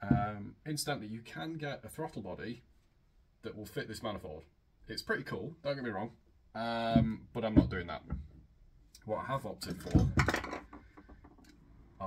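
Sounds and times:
metal parts clunking and clinking: 9.6s - 11.5s.

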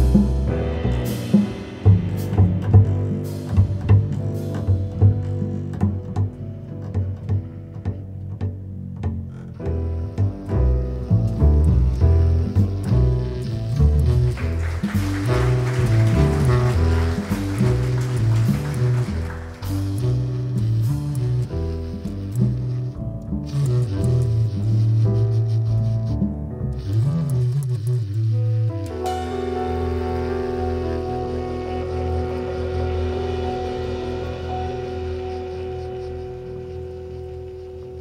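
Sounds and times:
soft cymbals: 0.0s - 5.5s
plucked double bass: 0.0s - 38.0s.

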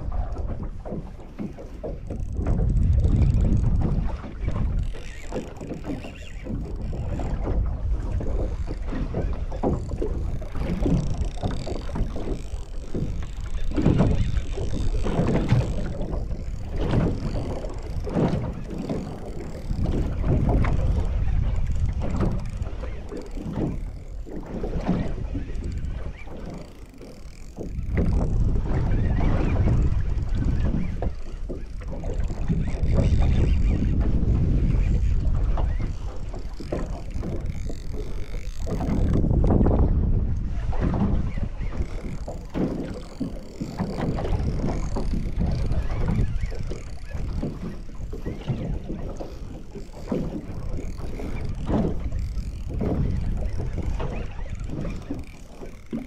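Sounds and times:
waves slapping boat hull: 0.0s - 56.0s
wind buffeting microphone: 0.0s - 56.0s.

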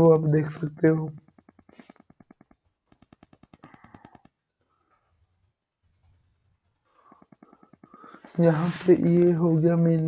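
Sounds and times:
rapid faint clicks: 0.8s - 5.1s, 5.9s - 8.4s.

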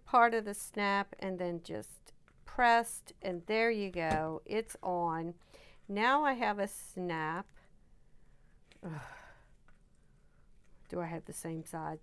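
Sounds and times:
woman groaning and sighing: 8.8s - 9.4s.

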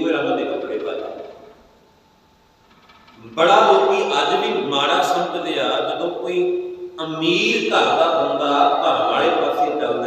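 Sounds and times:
man's amplified voice: 0.0s - 1.4s, 3.2s - 10.0s.

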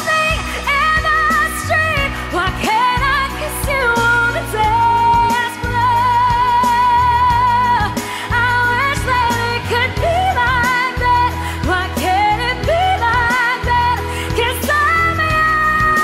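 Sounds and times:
pop song with sung melody: 0.0s - 16.0s.

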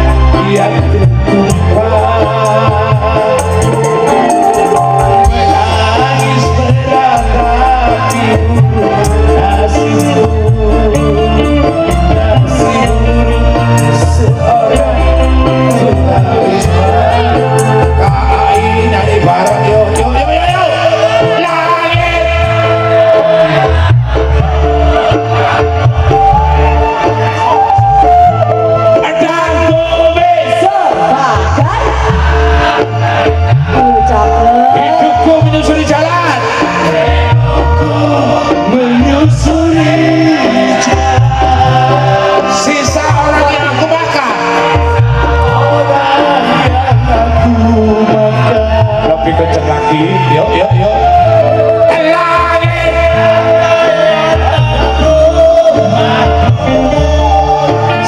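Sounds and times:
drum beats: 0.0s - 58.0s
live band playing: 0.0s - 58.0s
pulsing bass line: 0.0s - 58.0s.

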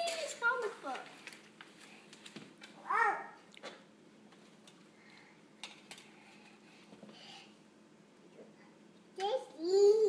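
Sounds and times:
toddler babbling: 2.8s - 3.4s, 9.2s - 10.0s.

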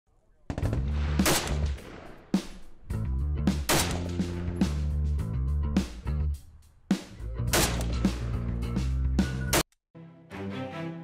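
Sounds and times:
rifle gunfire: 0.5s - 2.7s, 3.7s - 4.4s, 7.5s - 8.0s.

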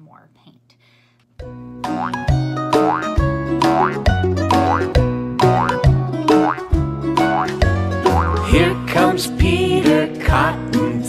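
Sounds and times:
upbeat children's song music: 1.4s - 11.0s.

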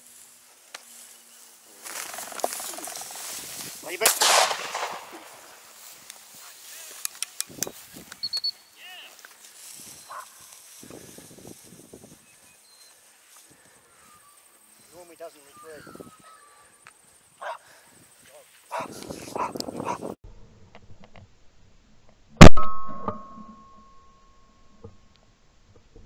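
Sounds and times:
sharp clicks: 7.0s - 8.5s
dog sounds: 18.7s - 20.2s.

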